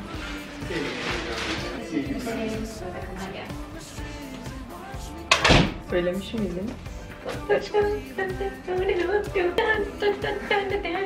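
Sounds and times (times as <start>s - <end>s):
background music: 0.0s - 11.0s
door closing with a thud: 5.3s - 5.9s.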